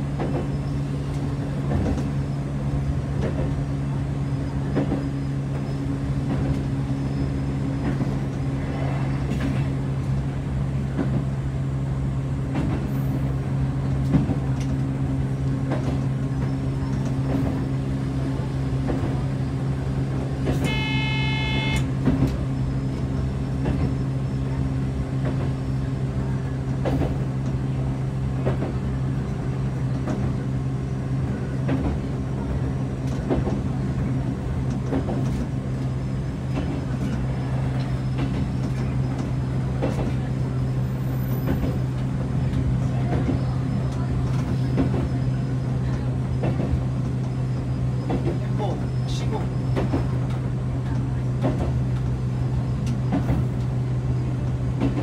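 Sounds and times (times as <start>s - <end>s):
train motor hum: 0.0s - 55.0s
rail-joint clicks: 0.1s - 2.4s, 3.1s - 3.7s, 4.4s - 11.4s, 12.4s - 55.0s
train horn blast: 20.5s - 22.1s.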